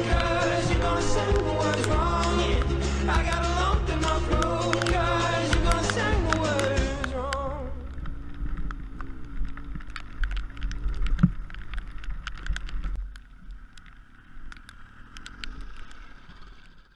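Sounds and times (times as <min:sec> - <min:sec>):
motorcycle engine running: 0:00.0 - 0:10.2
sharp clicks of gravel: 0:00.0 - 0:16.9.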